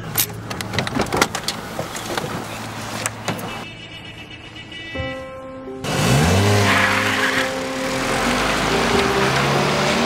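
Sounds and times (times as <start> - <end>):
tyre and road noise: 0.0 - 10.0
car engine accelerating: 5.8 - 10.0.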